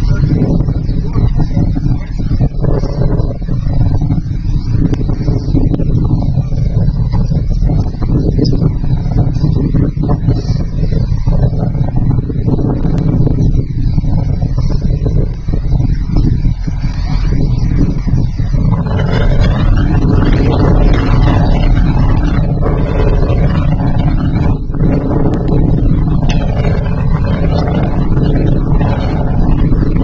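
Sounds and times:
crane engine rumbling: 0.0s - 30.0s.

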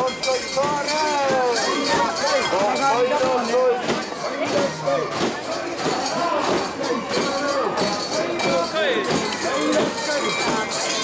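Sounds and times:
crowd calling out together: 0.0s - 11.0s.

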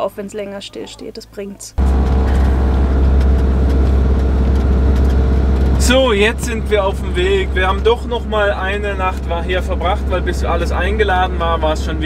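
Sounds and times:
road noise: 1.7s - 12.0s
diesel engine drone inside cab: 1.8s - 12.0s.

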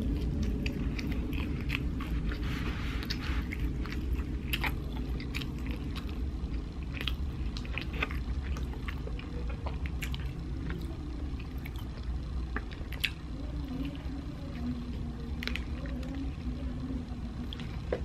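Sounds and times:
person chewing food: 0.0s - 16.4s, 17.4s - 18.0s
low room hum: 0.0s - 18.0s.

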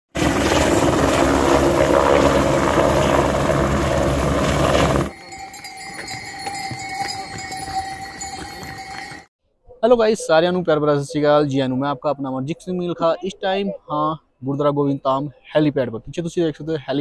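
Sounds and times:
helicopter rotor and engine: 0.1s - 6.8s
mule bells ringing: 5.1s - 9.3s.

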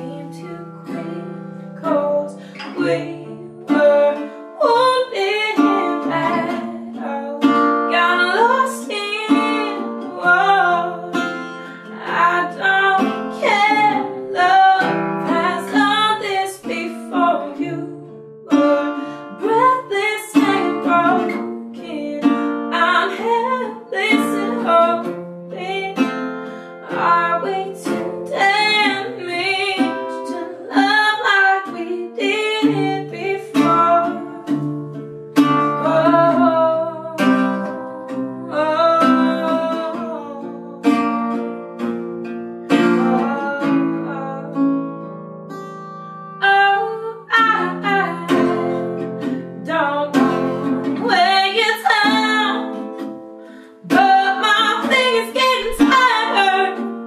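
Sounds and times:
woman singing slow song: 0.0s - 41.4s, 42.7s - 44.8s, 46.4s - 53.0s, 53.6s - 57.0s
acoustic guitar: 0.0s - 57.0s.

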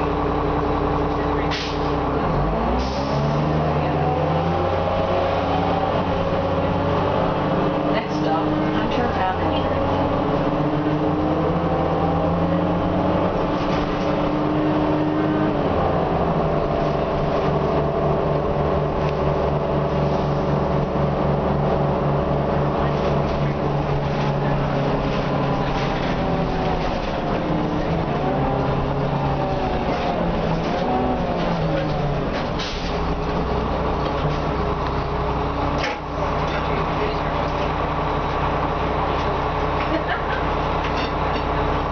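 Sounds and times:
bus diesel engine running: 0.0s - 41.9s.

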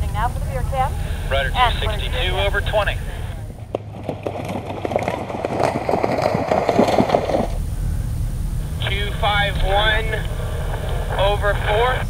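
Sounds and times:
horse hooves splashing through water: 3.7s - 7.6s.

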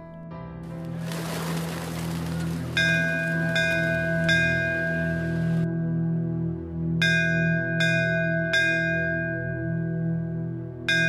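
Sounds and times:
low music drone: 0.0s - 11.0s
wash of noise: 0.8s - 5.6s
bell-like chimes: 2.4s - 5.7s.

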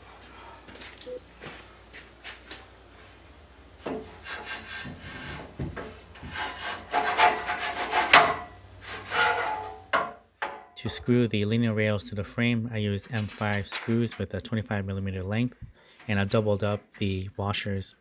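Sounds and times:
metal table scraping and rubbing: 6.2s - 9.9s.

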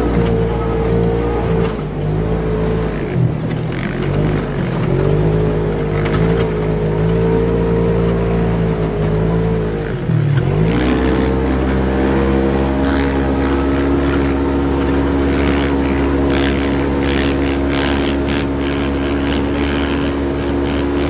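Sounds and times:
off-road vehicle engine running: 0.0s - 21.0s.

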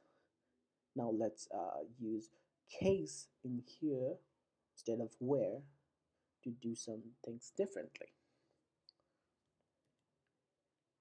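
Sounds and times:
person speaking: 1.0s - 4.2s, 6.4s - 8.2s.

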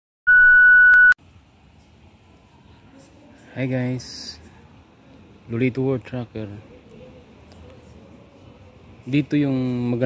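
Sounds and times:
high-pitched test-tone beep: 0.3s - 1.2s.

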